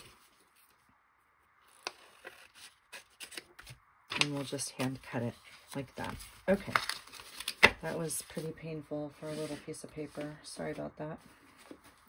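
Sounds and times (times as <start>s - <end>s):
paper rustling: 1.7s - 12.0s.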